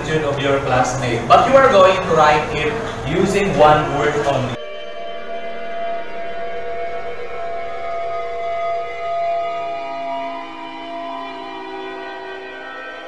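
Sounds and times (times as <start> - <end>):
eerie synthesizer drone: 0.0 - 13.0.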